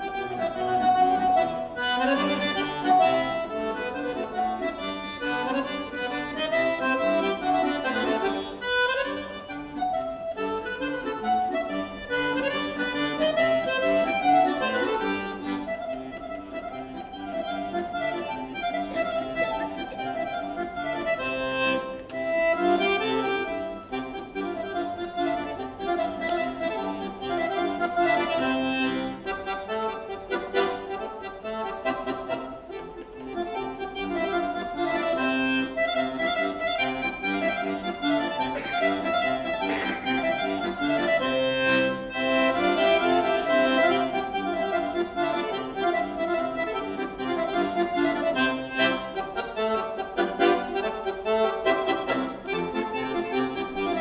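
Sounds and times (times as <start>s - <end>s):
solo accordion playing: 0.0s - 54.0s.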